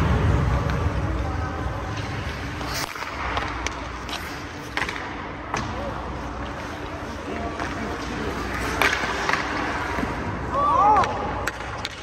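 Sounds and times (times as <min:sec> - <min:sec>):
hockey sticks and pucks clacking: 0:00.0 - 0:12.0
skates scraping on ice: 0:00.0 - 0:12.0.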